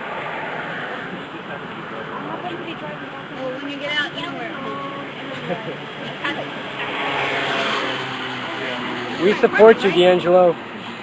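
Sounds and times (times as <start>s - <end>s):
road traffic: 0.0s - 11.0s
people talking indistinctly: 0.7s - 10.7s.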